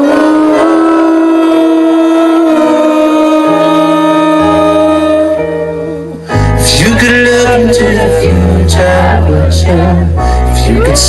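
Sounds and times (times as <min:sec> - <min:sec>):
man singing a sustained note: 0:00.0 - 0:05.6, 0:06.6 - 0:11.0
keyboard accompaniment: 0:00.0 - 0:11.0.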